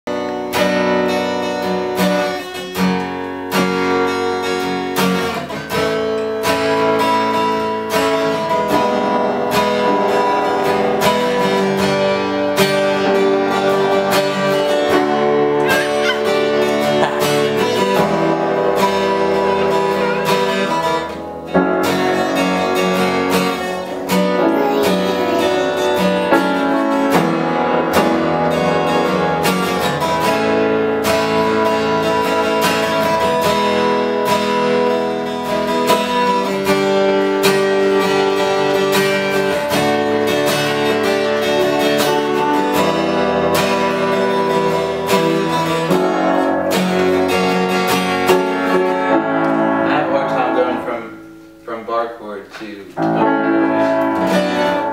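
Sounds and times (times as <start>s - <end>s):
piano playing: 0.1s - 51.8s, 53.0s - 54.9s
acoustic guitar strumming: 0.1s - 54.9s.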